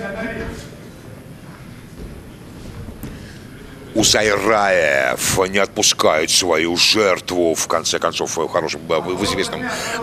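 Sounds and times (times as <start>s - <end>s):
sports hall rumble: 0.0s - 10.0s.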